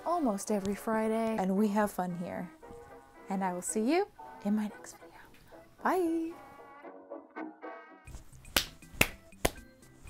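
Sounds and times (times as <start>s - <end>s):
finger snaps: 8.4s - 9.7s.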